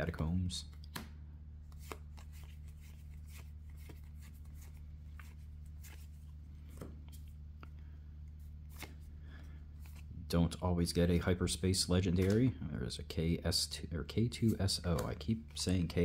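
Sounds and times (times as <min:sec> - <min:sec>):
trading cards being flipped: 0:00.7 - 0:09.1, 0:12.1 - 0:12.5, 0:14.4 - 0:15.9.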